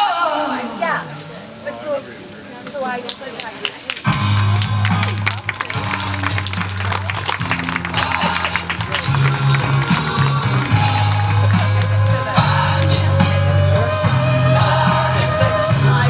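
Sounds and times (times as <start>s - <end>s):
busy percussion: 3.4s - 16.0s
sustained bass notes: 4.1s - 16.0s.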